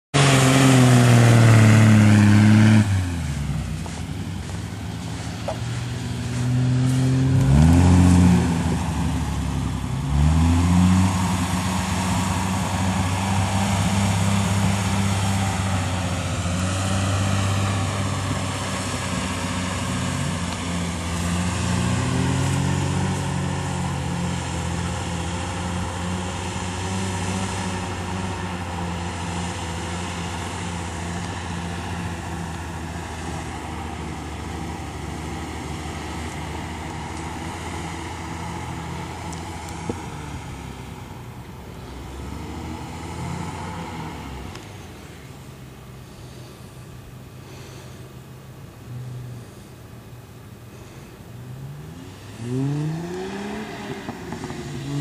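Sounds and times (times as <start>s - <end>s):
pickup engine revving: 0.1s - 55.0s.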